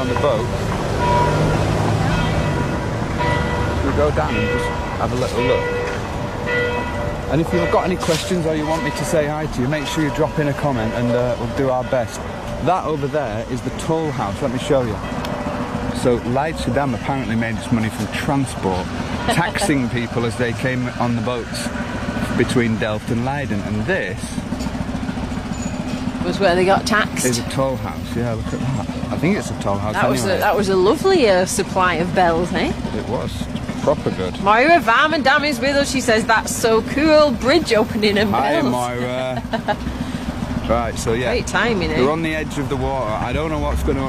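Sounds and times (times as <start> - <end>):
church bells ringing: 0.0 - 13.0
low engine hum: 0.0 - 44.0.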